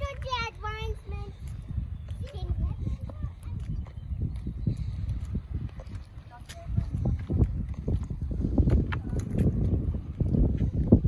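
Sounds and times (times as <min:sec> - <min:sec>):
wind rumble on microphone: 0:00.0 - 0:11.0
footsteps on rock: 0:01.4 - 0:10.9.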